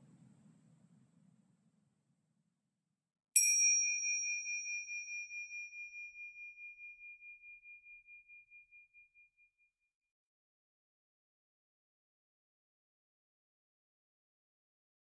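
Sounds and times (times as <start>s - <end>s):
meditation bell ringing: 3.4s - 8.7s.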